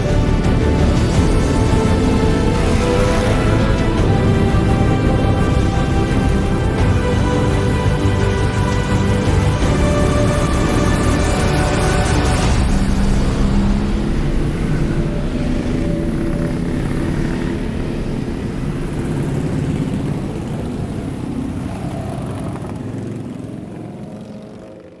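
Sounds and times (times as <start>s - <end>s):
motorcycle engines cruising: 0.0s - 25.0s.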